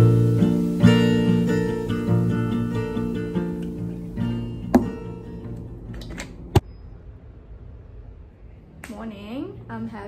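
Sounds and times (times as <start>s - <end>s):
woman speaking: 8.9s - 10.0s.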